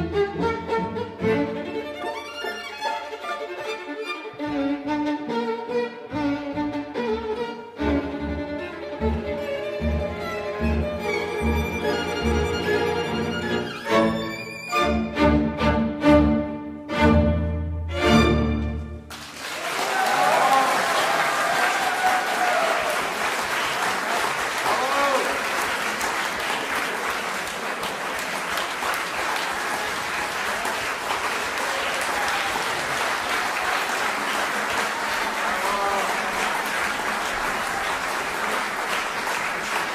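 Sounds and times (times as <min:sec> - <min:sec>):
audience applause: 0:19.1 - 0:39.9.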